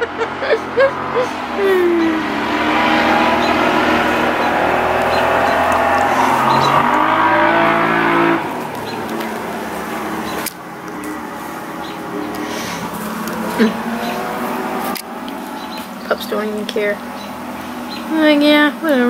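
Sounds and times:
vehicle engine revving: 0.0 - 19.0.

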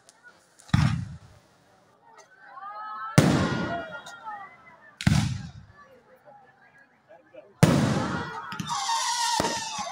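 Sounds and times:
firework bang: 7.6 - 9.9.

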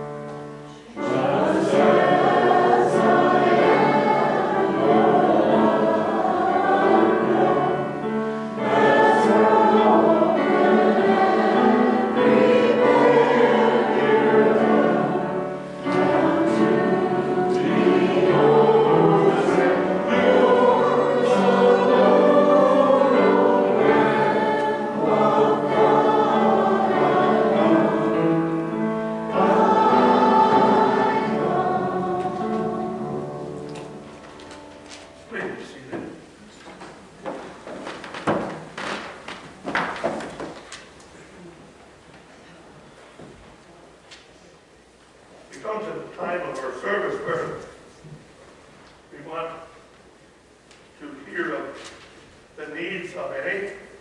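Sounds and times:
group singing a hymn: 0.0 - 35.9.

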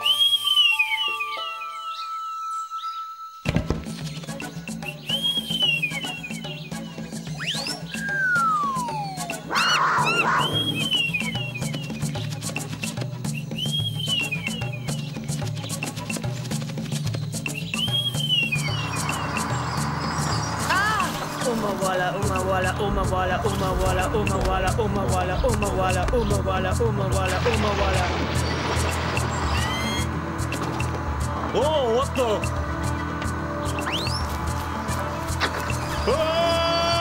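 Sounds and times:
falling whistle glide: 0.0 - 3.2, 7.4 - 11.9, 29.3 - 30.1
bird-like whistle chirps: 0.0 - 3.5, 4.4 - 12.3, 13.3 - 15.1, 17.5 - 21.1, 29.3 - 30.2, 33.7 - 34.3
cartoon music with low beat: 3.5 - 37.0
high whistle notes on a pipe: 29.6 - 30.2.

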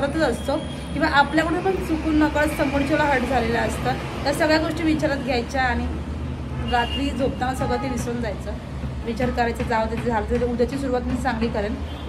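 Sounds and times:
woman talking: 0.0 - 6.0, 6.7 - 11.8.

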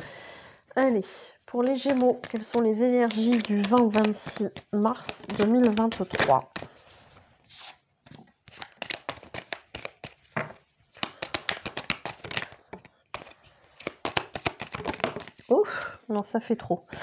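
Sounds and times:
cards being shuffled: 1.5 - 15.6
cards dealt onto cloth: 1.6 - 6.8.

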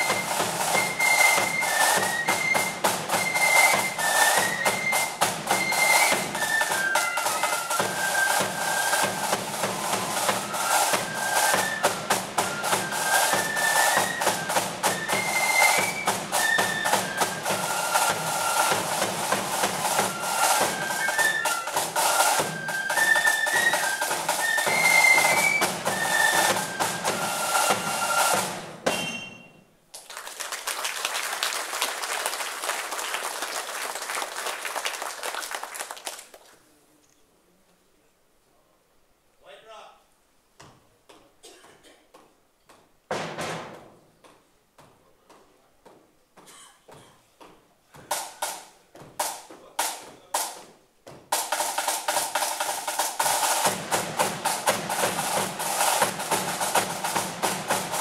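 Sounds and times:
flutes playing high melody: 0.0 - 29.7.

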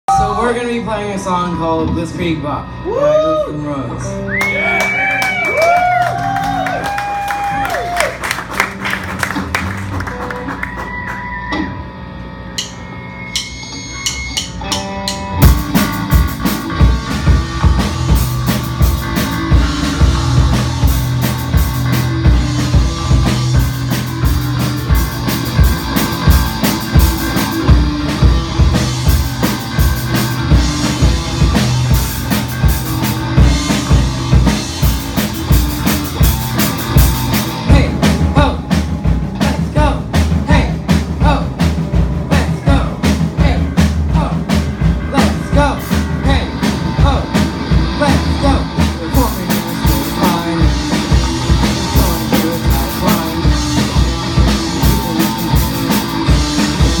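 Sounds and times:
electric guitar: 1.8 - 57.0
drum kit rock beat: 4.1 - 11.9, 12.5 - 57.0
person singing: 42.2 - 57.0.

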